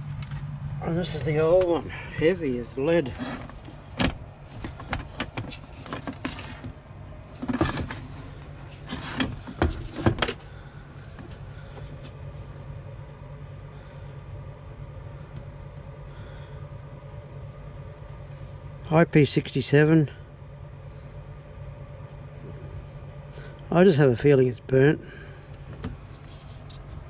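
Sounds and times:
low hum: 0.0 - 27.0.

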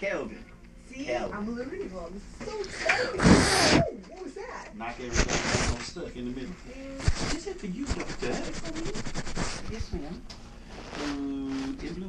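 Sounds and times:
microphone rubbing against fabric: 3.1 - 3.9, 5.0 - 12.0.

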